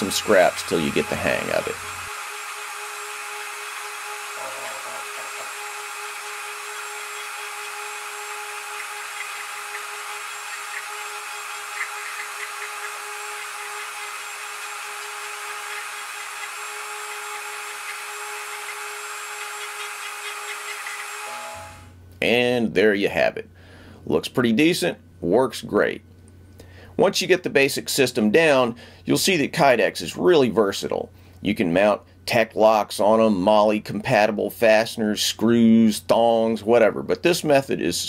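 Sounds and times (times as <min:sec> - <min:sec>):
rotary tool whining: 0:00.0 - 0:22.0.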